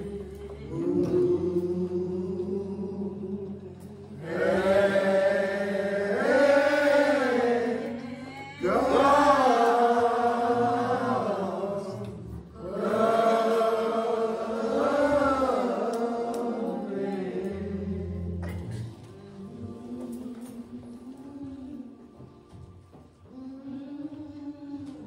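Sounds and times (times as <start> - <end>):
slow hymn singing: 0.0 - 25.0.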